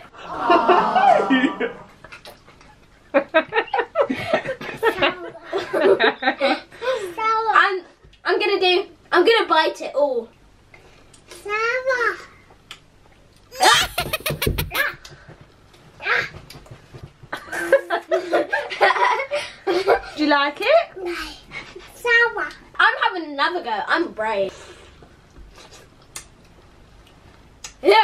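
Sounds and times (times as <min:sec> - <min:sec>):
child laughing: 0:13.6 - 0:15.0.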